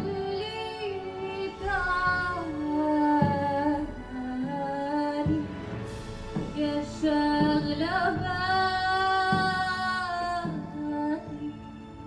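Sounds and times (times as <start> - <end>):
woman singing unaccompanied: 0.0 - 5.6, 6.5 - 11.7
low frame drum beat: 1.6 - 11.4.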